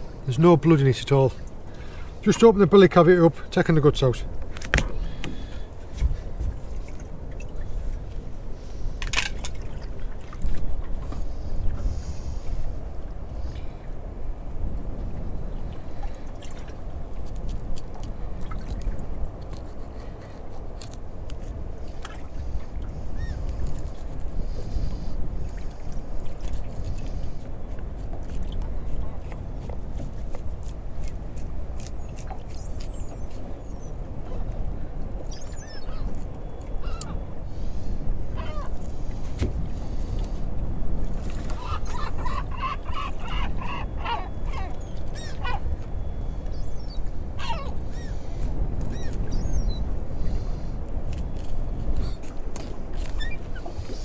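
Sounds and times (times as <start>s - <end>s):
water lapping at hull: 0.0s - 54.0s
wind rumble: 4.2s - 54.0s.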